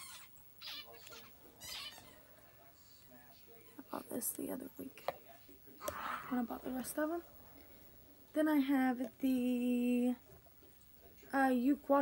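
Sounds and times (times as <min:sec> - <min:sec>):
parakeets chirping: 0:00.0 - 0:02.2.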